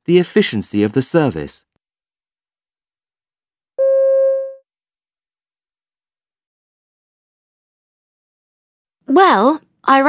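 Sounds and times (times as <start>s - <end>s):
electronic beep: 3.8s - 4.6s.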